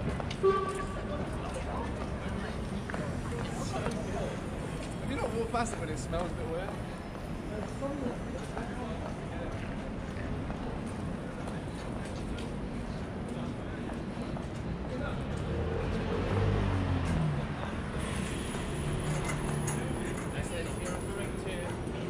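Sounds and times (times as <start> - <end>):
passers-by talking: 0.0 - 22.0
traffic: 0.0 - 22.0.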